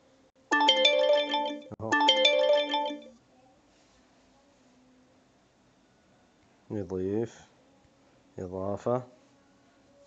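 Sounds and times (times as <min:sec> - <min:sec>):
phone melodic alert tone: 0:00.5 - 0:03.1.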